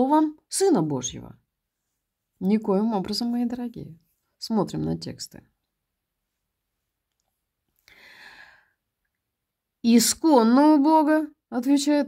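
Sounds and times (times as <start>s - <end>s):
person speaking: 2.4s - 5.5s
soft breath into microphone: 7.8s - 8.8s.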